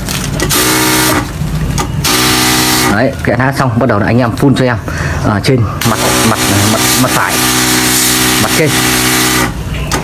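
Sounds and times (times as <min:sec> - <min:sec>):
pump humming: 0:00.4 - 0:01.4, 0:02.0 - 0:02.9, 0:05.9 - 0:09.6.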